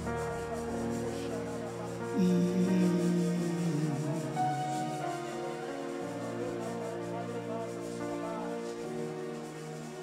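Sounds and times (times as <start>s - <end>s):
soft electric keyboard chords: 0.0s - 10.0s.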